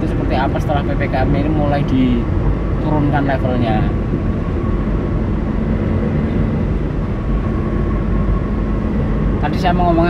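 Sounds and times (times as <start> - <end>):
road and engine noise in car cabin: 0.0 - 10.0.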